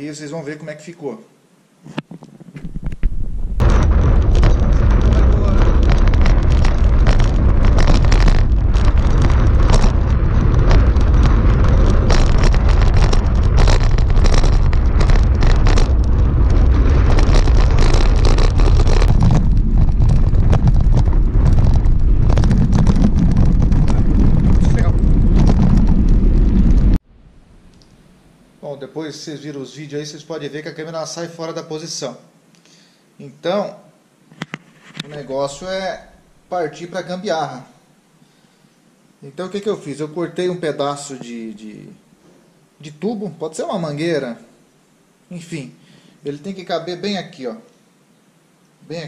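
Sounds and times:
bicycle riding rumble and rattles: 2.5 - 27.0.

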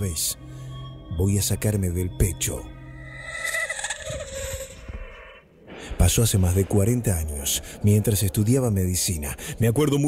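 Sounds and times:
soundtrack music bed: 0.0 - 8.7.

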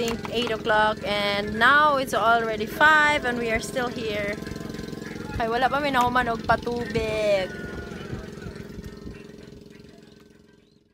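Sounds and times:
small engine humming: 0.0 - 10.9.

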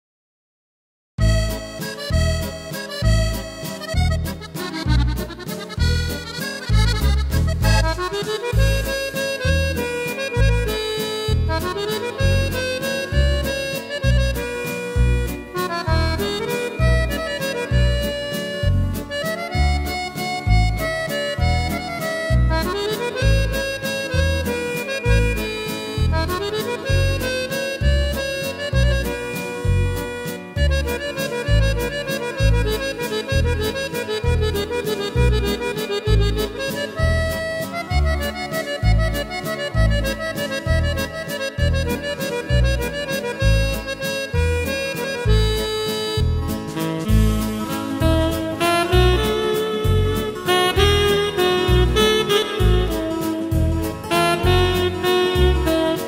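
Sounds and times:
accordion waltz on keyboard: 1.2 - 56.0.

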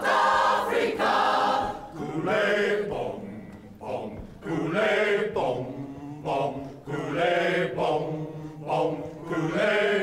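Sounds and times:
choir singing a chant: 0.0 - 10.0.

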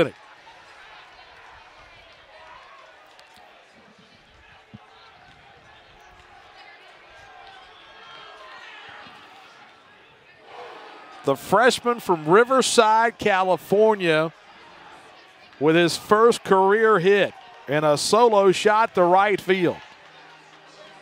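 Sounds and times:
murmur of distant crowd voices: 0.0 - 21.0.

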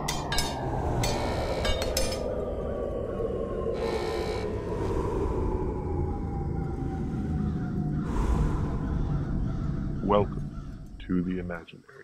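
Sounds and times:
whooshing swell: 0.0 - 11.2
low rumbling drone: 0.0 - 11.6.

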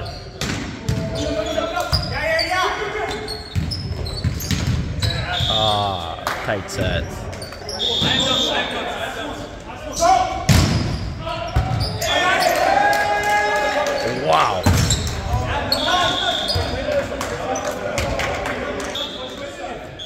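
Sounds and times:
shoes squeaking on floor: 1.0 - 5.8, 6.8 - 8.9, 14.0 - 16.8
players' voices: 5.0 - 10.6, 11.2 - 20.0.

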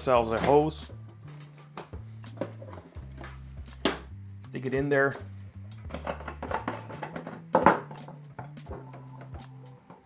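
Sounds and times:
background music: 0.0 - 10.0
hose knocking on plastic can: 5.9 - 8.9.

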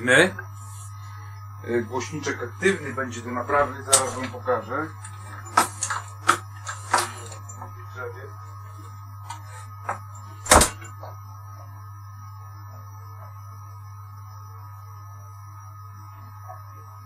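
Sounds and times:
low hum: 0.0 - 17.0
door thudding shut: 10.5 - 10.9.

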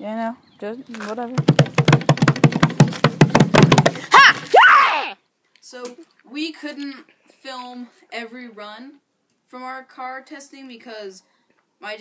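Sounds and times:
rapid tapping and clicking: 1.4 - 4.1.

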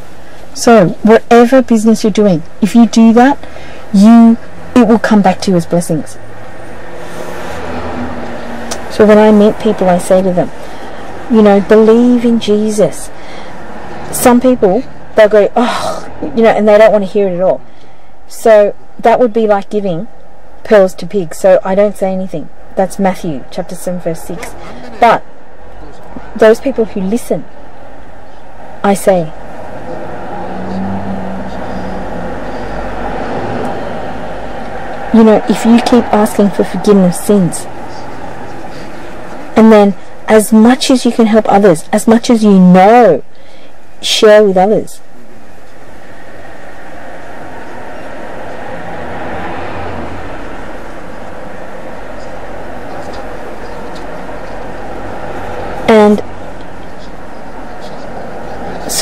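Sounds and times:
faint hum: 0.0 - 59.0
low rumbling background noise: 0.0 - 59.0
microphone hiss: 0.0 - 59.0.

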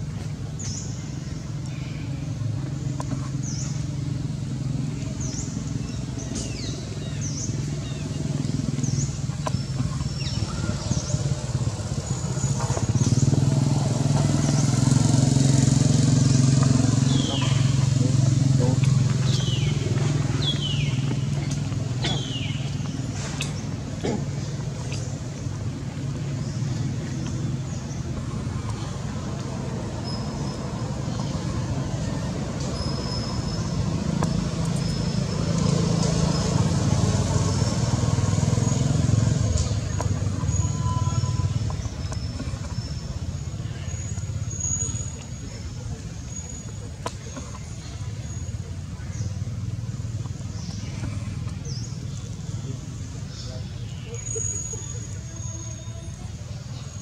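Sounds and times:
vehicle engine running: 0.0 - 57.0.

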